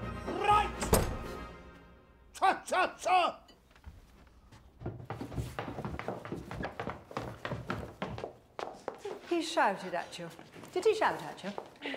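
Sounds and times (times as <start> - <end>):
footsteps on wooden stairs: 3.7 - 11.8.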